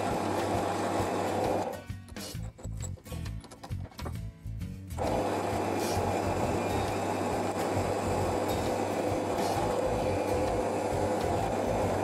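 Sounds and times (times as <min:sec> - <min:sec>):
drill press boring into wood: 0:00.0 - 0:01.7, 0:05.0 - 0:12.0
background music with steady beat: 0:00.0 - 0:12.0.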